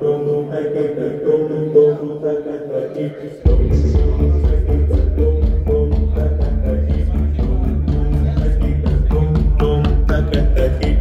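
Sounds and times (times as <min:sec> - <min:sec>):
music over loudspeakers: 0:03.4 - 0:11.0
deep bass drone: 0:03.5 - 0:11.0
quick percussive beat: 0:03.5 - 0:11.0.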